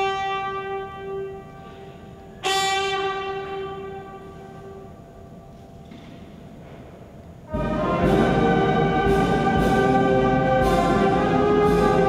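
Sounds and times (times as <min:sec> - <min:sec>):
long held brass note: 0:00.0 - 0:05.0.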